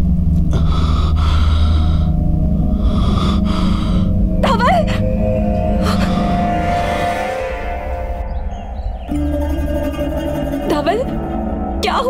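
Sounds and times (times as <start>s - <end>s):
loud steady low drone: 0.0s - 12.0s.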